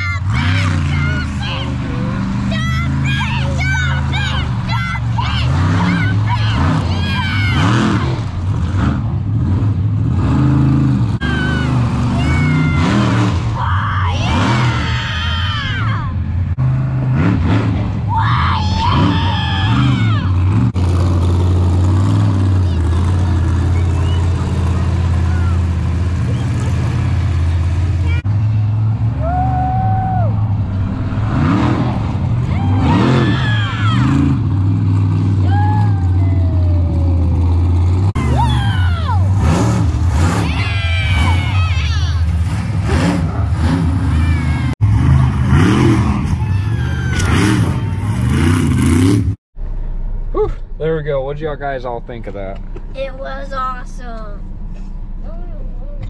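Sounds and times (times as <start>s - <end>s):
people shouting: 0.0s - 8.3s, 11.2s - 16.2s, 18.0s - 20.6s, 22.7s - 26.8s, 29.1s - 34.4s, 35.4s - 37.0s, 38.2s - 44.8s, 45.8s - 48.7s
monster truck engine revving: 0.0s - 51.0s.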